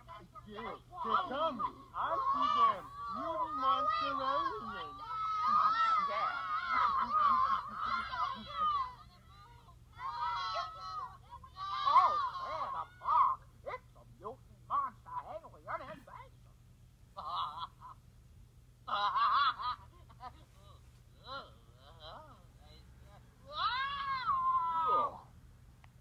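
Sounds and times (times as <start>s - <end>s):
cartoon laughter: 0.0s - 13.4s, 17.2s - 18.0s, 18.9s - 22.8s
high-pitched cartoon voices: 0.0s - 16.4s, 18.9s - 25.3s.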